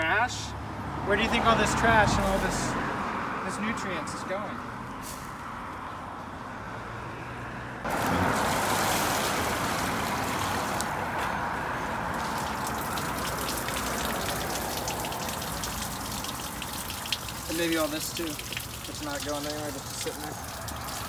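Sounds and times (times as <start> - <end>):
water pouring into drain: 7.9 - 10.9, 12.1 - 21.0.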